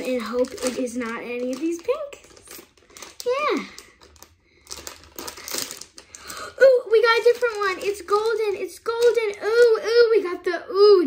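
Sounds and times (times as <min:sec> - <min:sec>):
packaging crinkling and tearing: 0:00.0 - 0:10.1.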